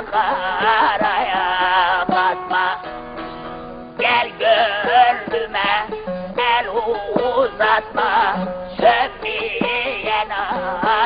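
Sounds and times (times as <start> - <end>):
man singing folk song: 0.0 - 3.0, 4.0 - 11.0.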